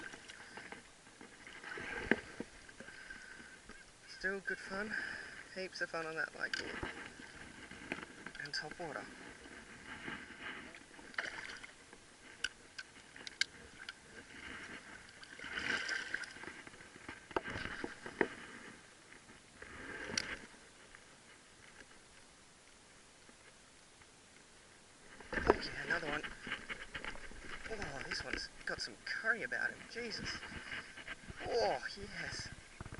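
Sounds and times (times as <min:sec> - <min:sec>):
water sloshing and splashing: 0:00.0 - 0:21.0, 0:25.1 - 0:32.9.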